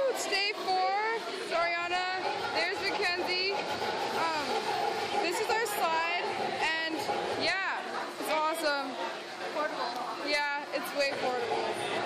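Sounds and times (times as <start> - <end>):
voices talking: 0.0 - 12.0.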